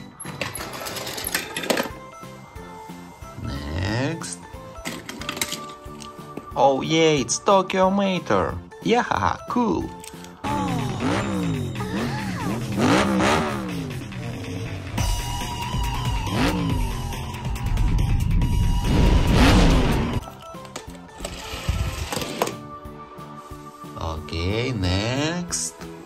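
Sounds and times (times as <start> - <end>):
cartoon music: 10.4 - 17.8
car engines revving and passing: 11.0 - 14.7.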